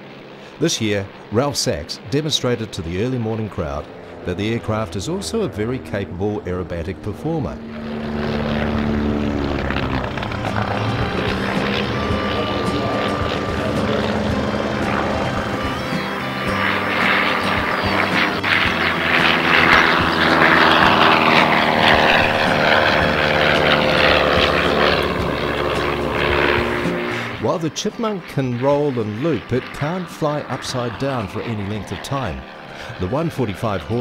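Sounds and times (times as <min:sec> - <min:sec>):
propeller plane engine drone: 0:00.0 - 0:34.0.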